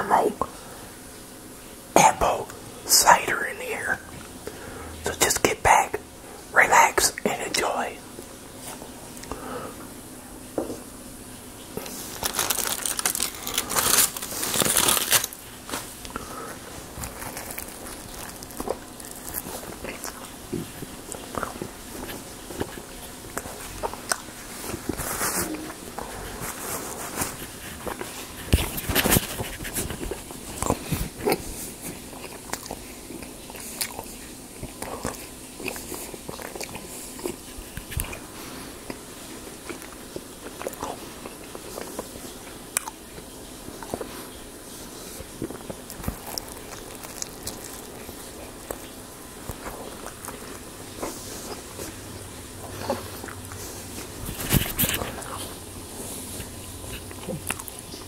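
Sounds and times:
chewing a sandwich: 11.3 - 58.0.

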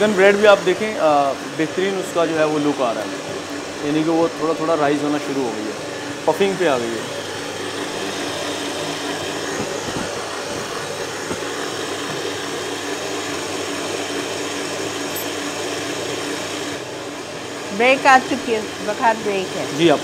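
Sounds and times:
small electric motor whirring: 0.0 - 20.0.

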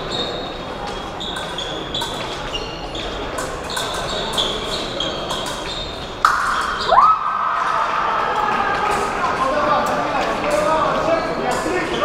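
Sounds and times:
shoes squeaking and tapping: 0.0 - 7.0.

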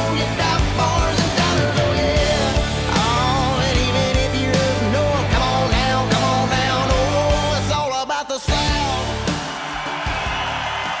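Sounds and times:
rock band music: 0.0 - 11.0.

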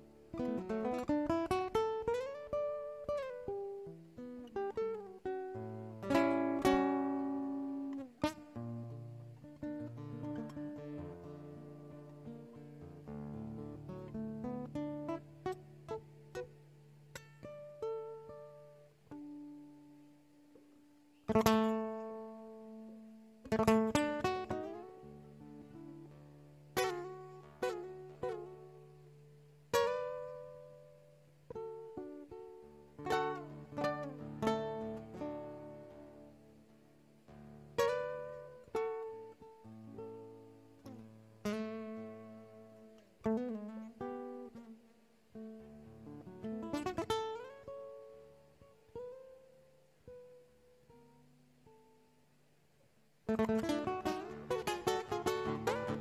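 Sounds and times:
classical guitar fingerstyle melody: 0.0 - 56.0.

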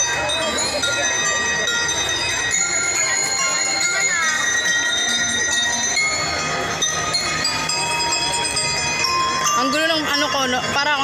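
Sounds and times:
bell lyres ringing: 0.0 - 11.0.

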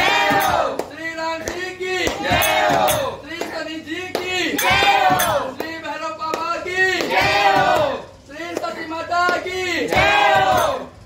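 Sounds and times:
group chanting in unison: 0.0 - 0.8, 2.0 - 3.2, 4.5 - 5.5, 6.9 - 8.1, 9.6 - 10.9.

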